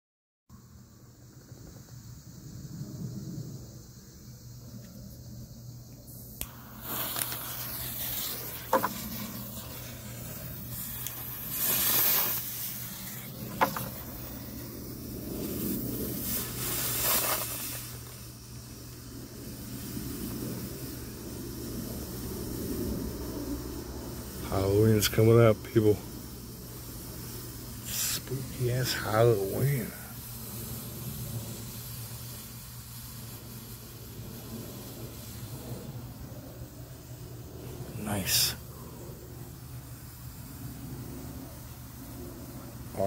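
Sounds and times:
smoke bomb hissing: 0:00.6 - 0:43.0.

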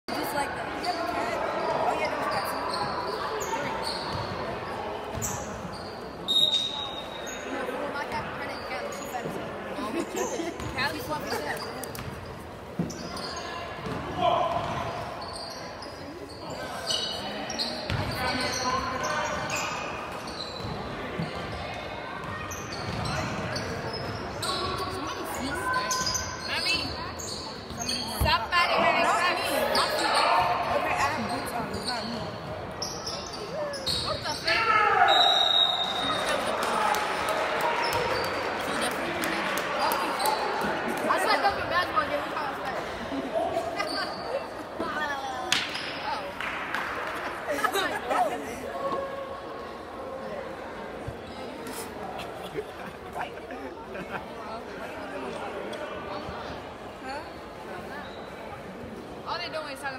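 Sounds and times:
indistinct chatter: 0:00.0 - 0:59.9.

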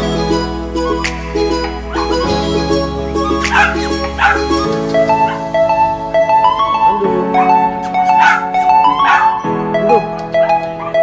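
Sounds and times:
background music: 0:00.0 - 0:11.0
small dog yipping: 0:07.4 - 0:09.5.

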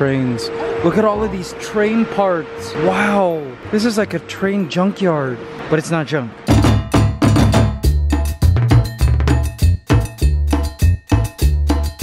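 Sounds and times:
upbeat music with percussive beat: 0:06.5 - 0:12.0.

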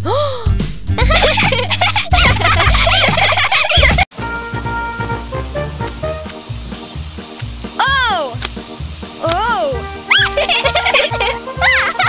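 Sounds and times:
background music: 0:00.0 - 0:12.0
cartoon kittens giggling: 0:01.0 - 0:04.1, 0:10.1 - 0:12.0.

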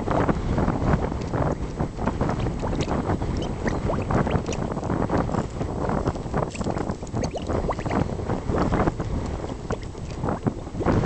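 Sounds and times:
wind buffeting microphone: 0:00.0 - 0:11.0
mud bubbles glugging and plopping: 0:02.3 - 0:08.8, 0:09.5 - 0:11.0.

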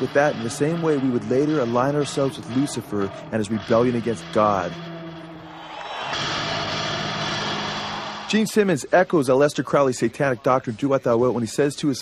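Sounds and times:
held low note: 0:00.0 - 0:05.5
live rock concert roar: 0:00.0 - 0:08.7.

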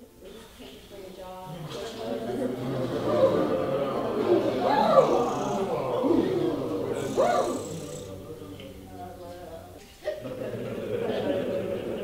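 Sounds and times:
person doing vocal warm-up: 0:06.9 - 0:08.2.

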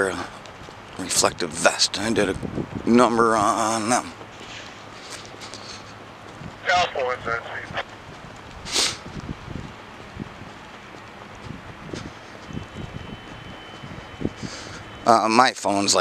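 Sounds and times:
low outdoor background: 0:00.0 - 0:16.0
short hiss: 0:08.6 - 0:09.1.

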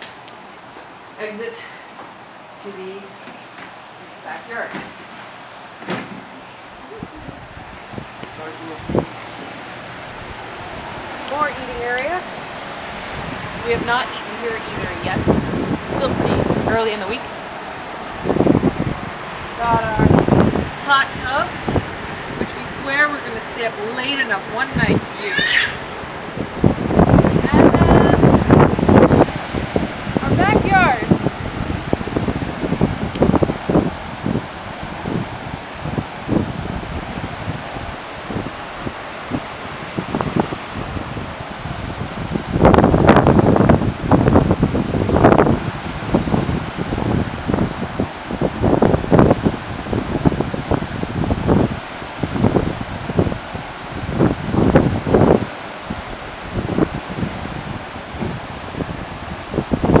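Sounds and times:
rush of wind and surf: 0:00.0 - 1:00.0
wind buffeting microphone: 0:00.0 - 1:00.0.

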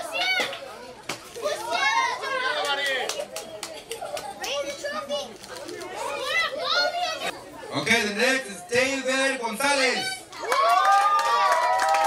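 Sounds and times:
children chattering and calling: 0:00.0 - 0:10.5.

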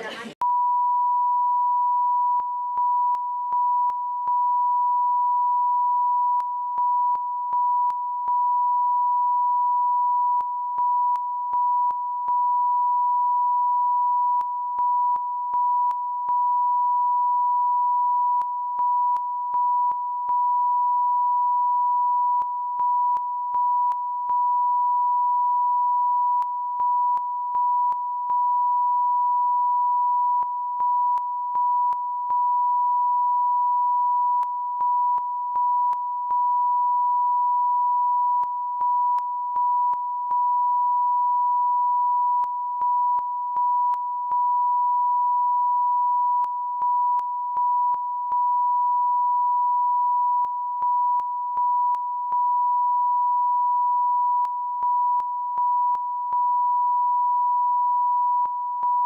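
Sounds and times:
high sine line-up tone: 0:00.4 - 0:59.0.

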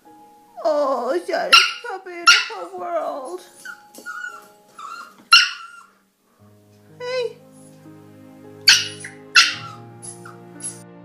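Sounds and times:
puppy yelping: 0:01.5 - 0:06.0, 0:08.6 - 0:10.8
puppy whining and crying: 0:01.6 - 0:06.0, 0:08.6 - 0:10.8.

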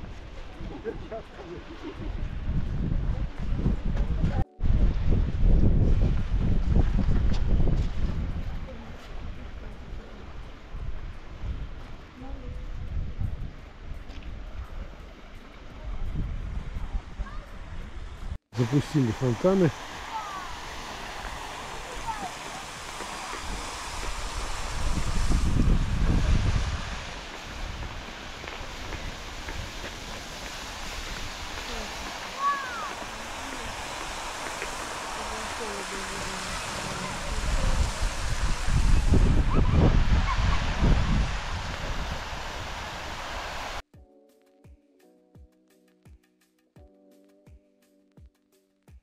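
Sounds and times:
fountain water spraying: 0:18.6 - 0:43.8
soft music: 0:43.9 - 0:49.0.

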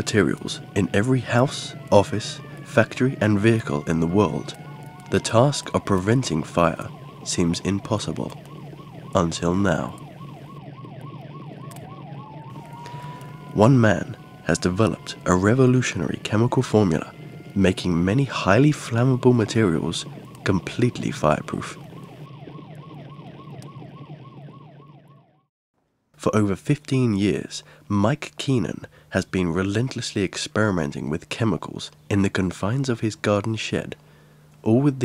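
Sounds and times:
siren yelping: 0:00.0 - 0:25.5
slower rising siren tone: 0:00.0 - 0:25.5.

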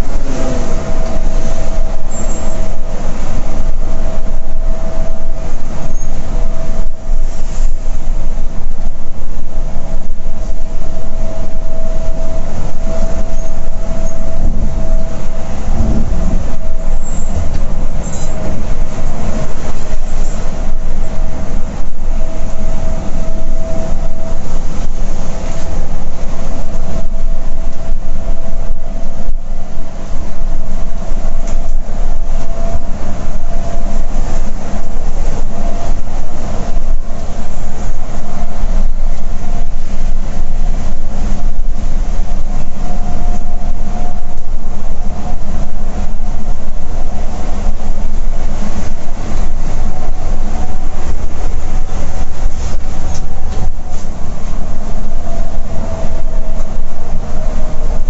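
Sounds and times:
bus road and drivetrain rumble: 0:00.0 - 0:58.0
faint steady whine: 0:00.0 - 0:58.0.

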